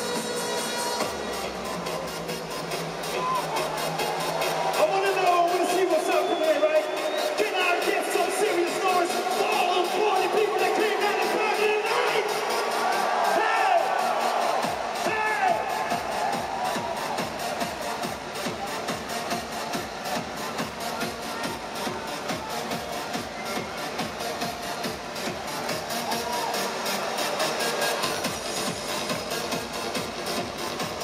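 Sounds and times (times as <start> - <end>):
electronic dance music: 0.0 - 31.0
crowd cheering and whooping: 3.0 - 8.7, 10.2 - 20.6, 22.5 - 28.2.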